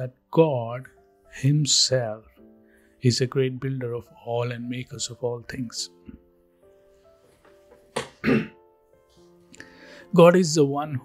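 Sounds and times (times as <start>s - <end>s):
soft background music: 0.0s - 11.0s
person clearing throat: 8.2s - 8.6s.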